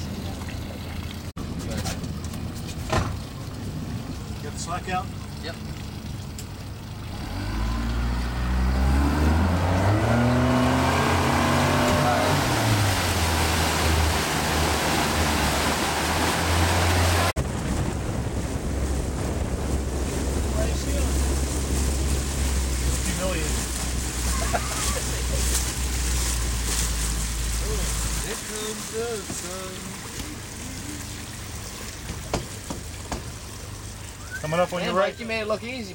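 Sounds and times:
boat engine accelerating: 0:00.0 - 0:35.9
rushing water: 0:00.0 - 0:35.9.

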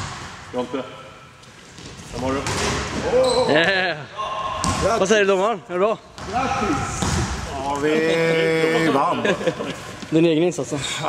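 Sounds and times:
voices in a hall: 0:02.0 - 0:11.0.

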